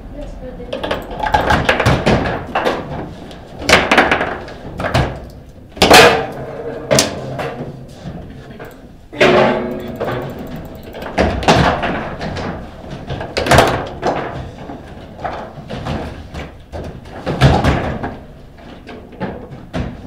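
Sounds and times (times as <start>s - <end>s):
foosball ball and rods knocking: 0.8s - 5.2s, 5.8s - 8.6s, 9.2s - 20.0s
short ringing tone: 9.3s - 10.9s.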